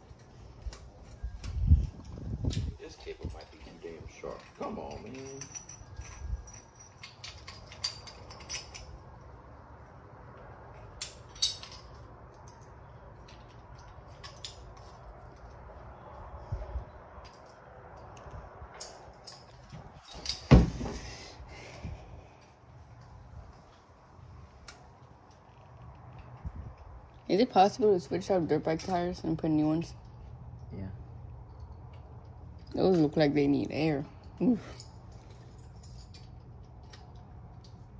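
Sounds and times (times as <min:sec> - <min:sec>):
metallic clicks and taps of tools: 0:34.2 - 0:37.8.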